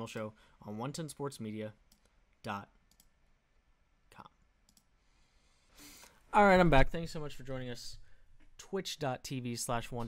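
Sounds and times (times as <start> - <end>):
faint clicks: 2.9 - 3.1, 4.7 - 4.9.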